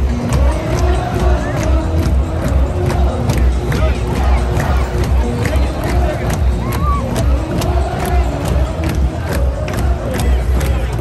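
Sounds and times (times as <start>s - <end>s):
crowd cheering: 0.0s - 11.0s
music with heavy bass beat: 0.0s - 11.0s.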